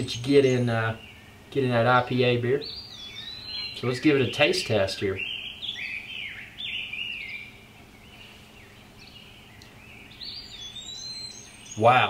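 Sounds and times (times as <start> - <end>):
birds chirping and singing: 0.0 - 12.0
faint steady hum: 0.0 - 12.0.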